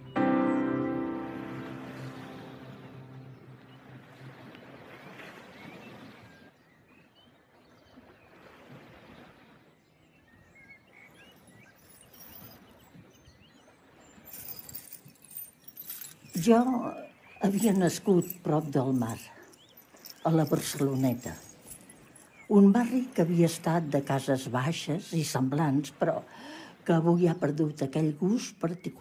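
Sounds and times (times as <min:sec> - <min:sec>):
held musical chord: 0:00.0 - 0:04.2
noisy ambient wash: 0:00.0 - 0:05.6.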